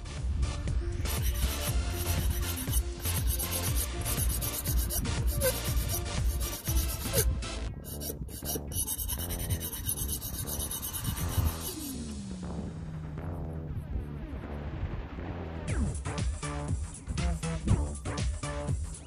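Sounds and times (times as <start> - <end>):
background music: 0.0 - 19.0
sharpening stone rasping on blade: 1.1 - 12.0.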